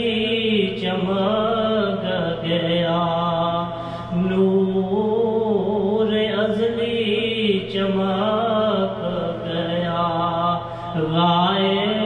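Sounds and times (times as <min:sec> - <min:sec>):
man singing unaccompanied: 0:00.0 - 0:12.0.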